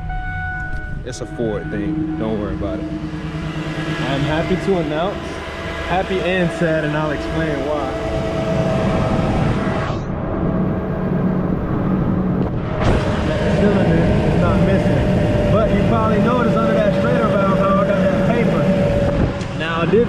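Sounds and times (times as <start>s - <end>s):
engine idling: 0.0s - 10.0s, 10.9s - 20.0s.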